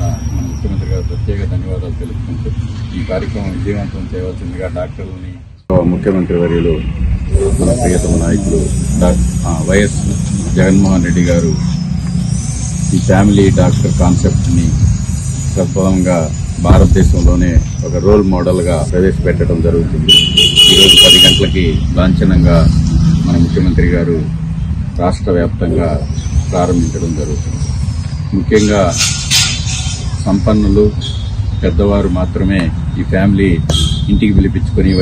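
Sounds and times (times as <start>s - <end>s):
man speaking: 0.0s - 11.8s, 12.9s - 14.9s, 15.5s - 24.3s, 25.0s - 27.6s, 28.3s - 29.1s, 30.2s - 35.0s
vehicle horn: 20.1s - 21.8s, 33.7s - 34.2s.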